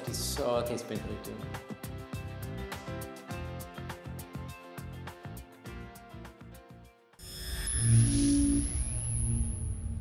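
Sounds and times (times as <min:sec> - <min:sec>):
shimmering logo sting: 0:07.2 - 0:10.0
thin high steady tone: 0:07.2 - 0:10.0.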